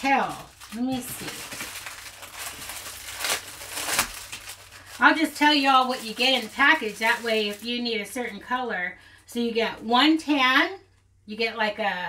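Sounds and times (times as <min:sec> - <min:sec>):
plastic package crinkling: 0:00.0 - 0:08.5.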